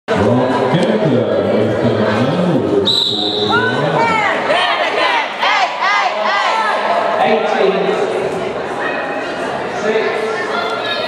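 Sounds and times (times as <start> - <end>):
crowd murmur: 0.1 - 11.0.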